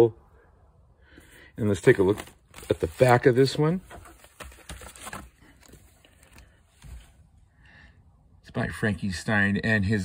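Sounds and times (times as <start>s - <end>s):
record jacket handling taps and rustles: 1.8s - 7.1s.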